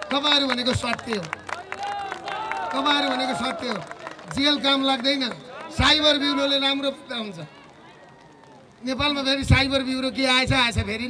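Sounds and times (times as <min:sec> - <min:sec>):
man speaking into a microphone: 0:02.7 - 0:07.5.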